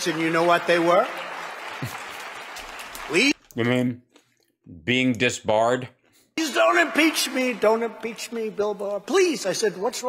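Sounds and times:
audience applauding: 0.0s - 3.4s, 6.4s - 8.7s.

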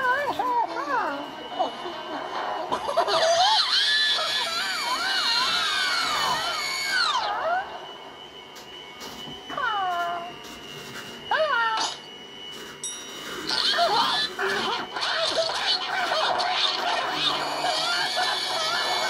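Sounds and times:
cartoon voices whimpering and wailing: 2.7s - 7.7s, 13.5s - 19.0s.

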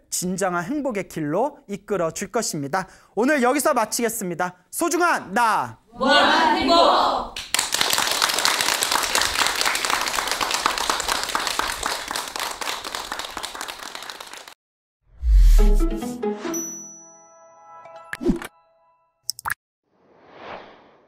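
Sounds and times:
studio audience applauding: 7.4s - 14.6s
chiming bell-like notes: 16.5s - 18.1s.

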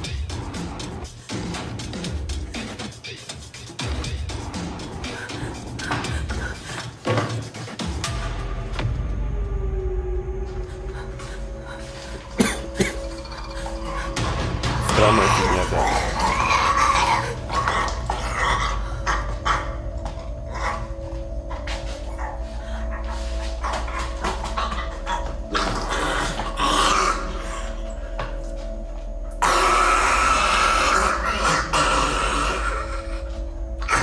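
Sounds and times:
tense low music drone: 3.8s - 7.2s, 7.8s - 34.0s.

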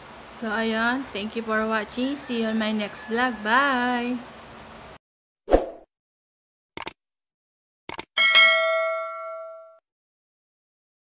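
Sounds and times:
bright bell chime: 8.2s - 9.8s.

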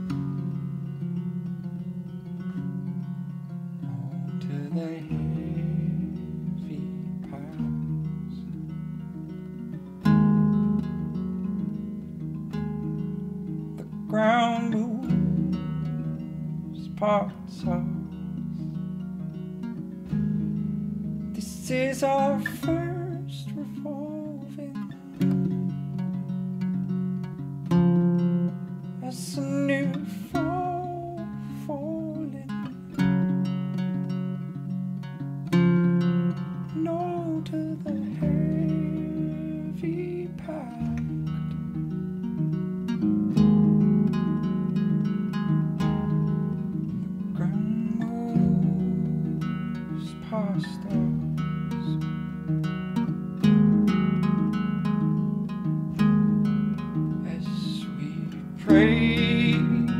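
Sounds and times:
acoustic guitar strumming: 0.0s - 59.9s
man singing: 3.8s - 8.4s, 13.8s - 15.6s, 16.7s - 18.2s, 21.3s - 25.5s, 29.0s - 32.8s, 36.7s - 41.2s, 47.3s - 52.0s, 57.2s - 59.9s.

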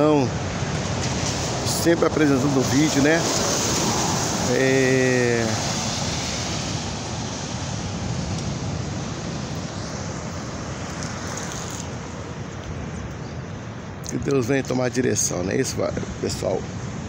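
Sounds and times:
surf: 0.0s - 13.0s
road traffic: 0.0s - 17.0s.

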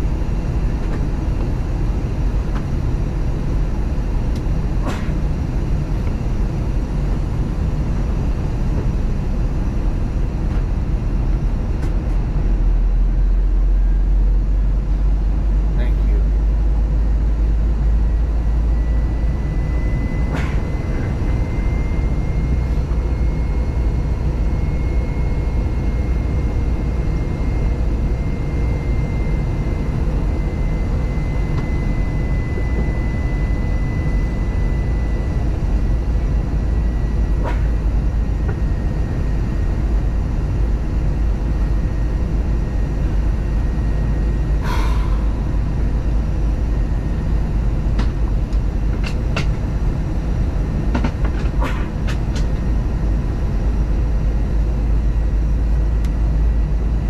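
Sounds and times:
faint steady whine: 0.0s - 57.0s
low rumble of engines and airflow: 0.0s - 57.0s.

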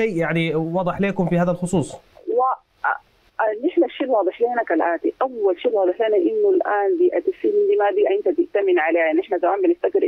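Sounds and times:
woman talking over telephone: 2.2s - 10.0s.

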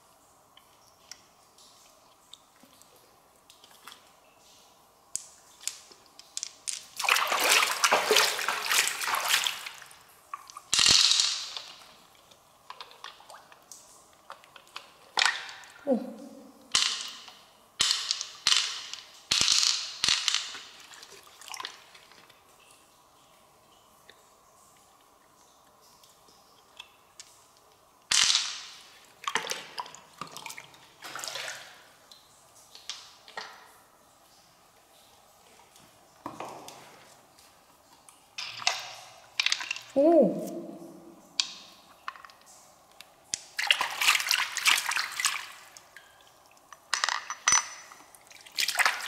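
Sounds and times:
water splashing: 7.0s - 10.7s, 29.2s - 32.0s, 43.5s - 46.2s, 48.2s - 49.0s.

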